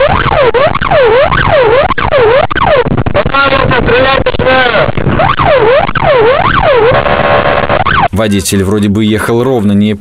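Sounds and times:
police siren yelping: 0.0 - 8.1.

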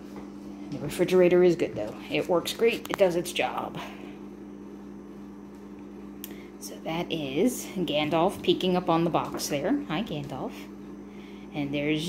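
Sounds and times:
refrigerator humming: 0.0 - 12.0.

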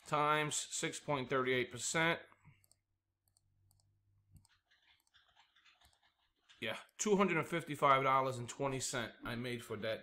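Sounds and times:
faint mouse clicks: 2.3 - 6.1.

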